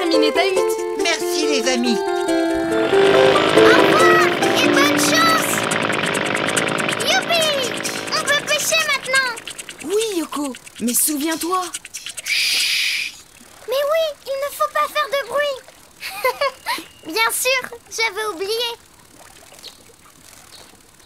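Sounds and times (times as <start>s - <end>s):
plucked-string cartoon music: 0.0s - 10.2s
hovercraft motor rushing: 2.1s - 12.3s.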